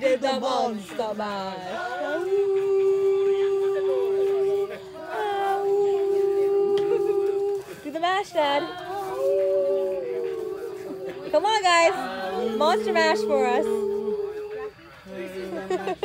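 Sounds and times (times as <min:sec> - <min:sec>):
long howls: 0:02.0 - 0:07.7, 0:08.6 - 0:14.8.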